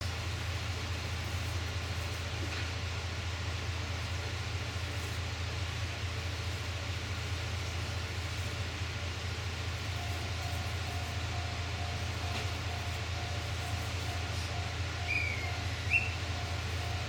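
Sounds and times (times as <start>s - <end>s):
diesel engine idling: 0.1s - 17.0s
short ringing tone: 9.9s - 17.0s.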